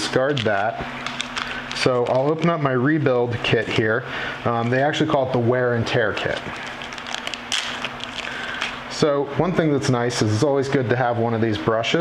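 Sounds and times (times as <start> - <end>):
plastic bag crinkling: 0.1 - 2.6, 6.2 - 8.9.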